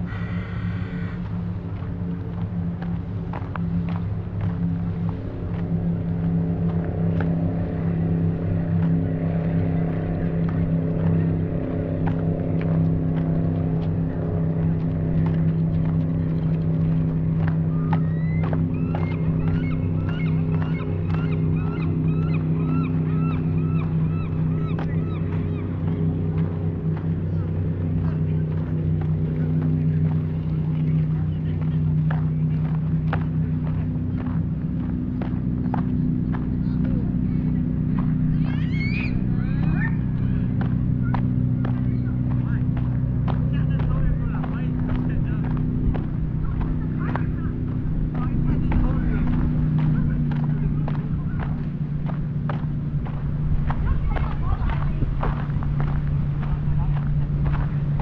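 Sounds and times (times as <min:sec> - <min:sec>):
faint voices: 0:00.0 - 0:58.0
low engine drone: 0:00.0 - 0:58.0
footsteps on gravel: 0:00.1 - 0:58.0.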